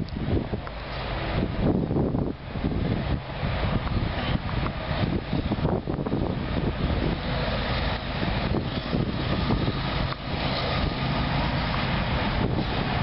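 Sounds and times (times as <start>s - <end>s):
diesel locomotive engine rumble: 0.0s - 13.0s
wind buffeting microphone: 0.0s - 13.0s.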